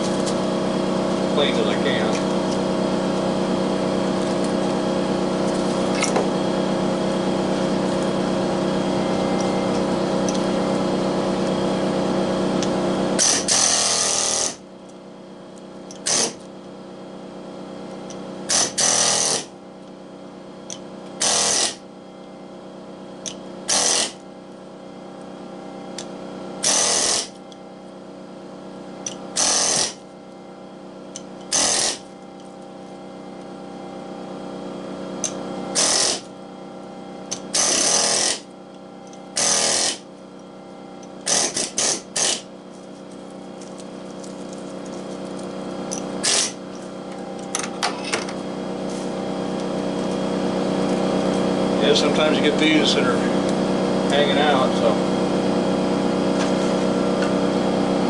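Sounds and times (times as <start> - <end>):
steady mechanical hum: 0.0 - 58.0.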